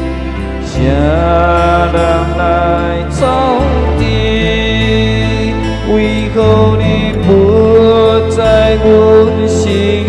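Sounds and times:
digital piano chords: 0:00.0 - 0:10.0
man singing long note: 0:00.6 - 0:10.0.

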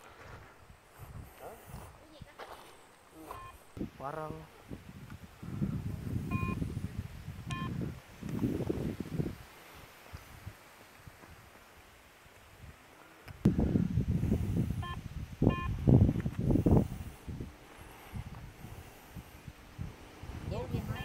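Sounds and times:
metal detector beeps: 0:03.2 - 0:03.6, 0:06.3 - 0:06.6, 0:07.5 - 0:07.8, 0:14.8 - 0:15.8, 0:20.8 - 0:21.0
low rumbling noise: 0:13.4 - 0:21.0.

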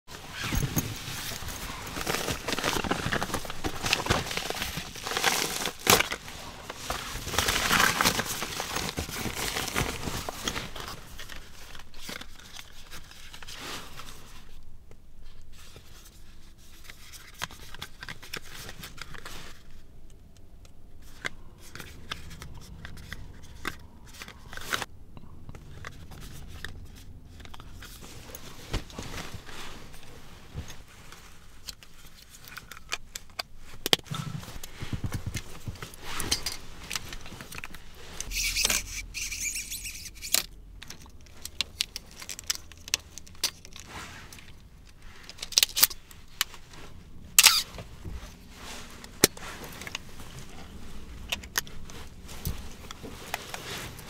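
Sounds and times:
paper and cardboard rustling: 0:00.1 - 0:14.6, 0:25.6 - 0:54.0
low steady hum: 0:00.1 - 0:54.0
fabric rustling: 0:25.9 - 0:32.4, 0:46.0 - 0:54.0.

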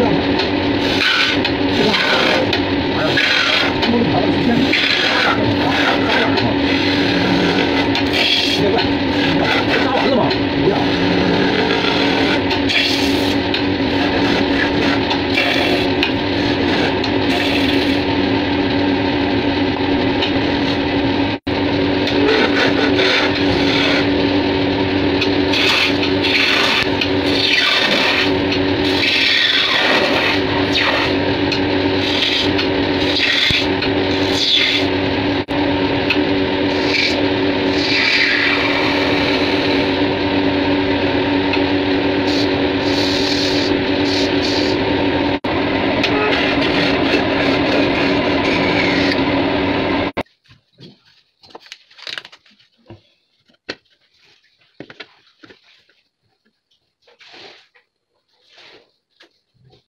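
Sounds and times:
chisel scraping spinning wood: 0:00.0 - 0:18.2, 0:22.0 - 0:24.3, 0:25.2 - 0:35.0, 0:46.0 - 0:49.3
wood lathe motor humming: 0:00.0 - 0:50.2.

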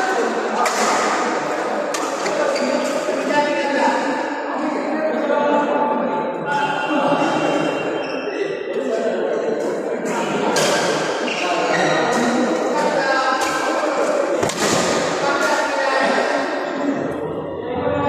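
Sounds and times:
players' voices echoing: 0:00.0 - 0:18.0
rackets hitting shuttlecock: 0:00.6 - 0:03.1, 0:13.4 - 0:15.6.

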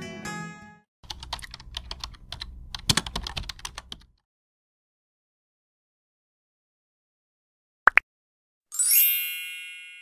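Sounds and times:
keyboard typing clicks: 0:01.1 - 0:04.1.

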